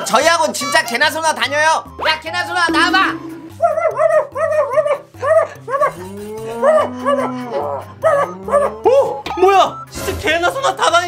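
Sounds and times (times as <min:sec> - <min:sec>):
background music with bass line: 0:00.7 - 0:10.1
dog barking: 0:03.8 - 0:06.0.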